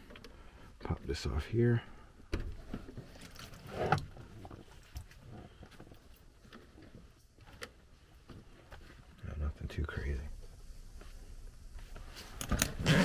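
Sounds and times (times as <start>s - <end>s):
rubber hoses being pulled: 12.2s - 13.0s.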